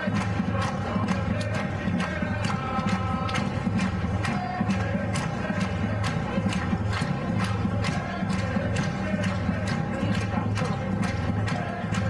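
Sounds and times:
samba drum group playing: 0:00.0 - 0:12.0.

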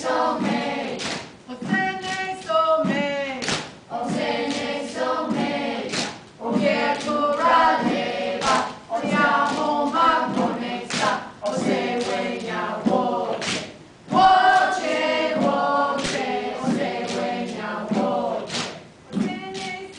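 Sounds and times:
children and adults singing: 0:00.0 - 0:19.9.

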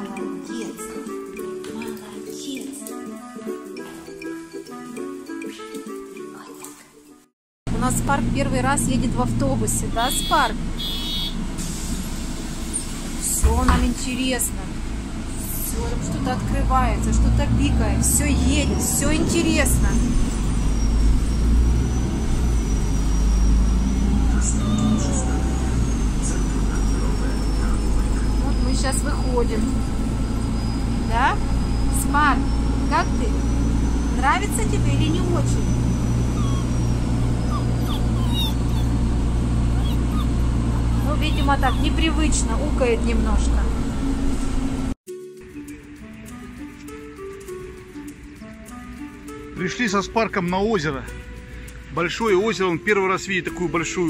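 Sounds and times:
bus engine and road rumble: 0:07.7 - 0:45.0
high whine: 0:19.9 - 0:34.4
puppy whining: 0:22.4 - 0:29.1, 0:35.1 - 0:42.4.

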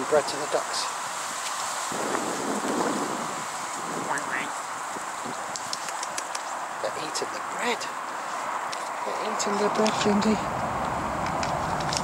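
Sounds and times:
wind on microphone: 0:00.0 - 0:06.9, 0:08.4 - 0:12.0
faint clicks: 0:05.3 - 0:06.6.

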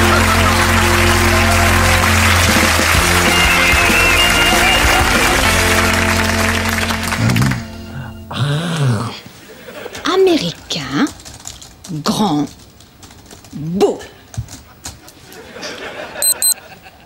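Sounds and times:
upbeat rock music with guitar: 0:01.5 - 0:07.2.

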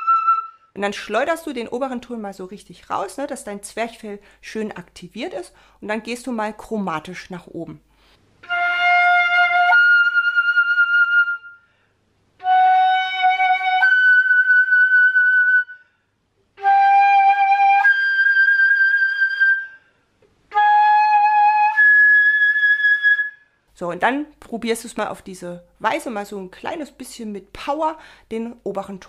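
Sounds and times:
flute playing octave slurs: 0:00.0 - 0:00.7, 0:08.4 - 0:11.8, 0:12.4 - 0:15.9, 0:16.6 - 0:23.6.

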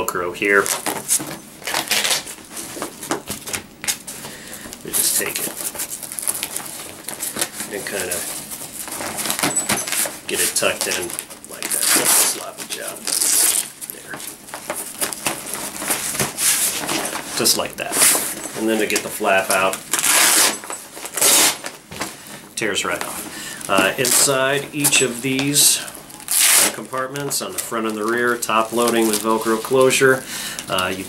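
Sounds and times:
stiff fabric bag rustling: 0:00.4 - 0:30.2.

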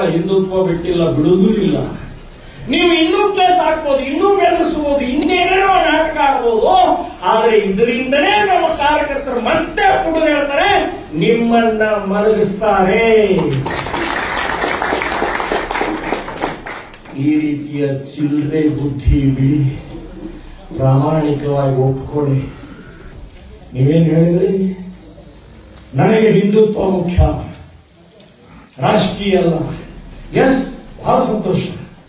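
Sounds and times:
man speaking into a microphone: 0:00.0 - 0:13.8, 0:17.0 - 0:27.9, 0:28.5 - 0:32.0
audience clapping: 0:13.2 - 0:17.5.

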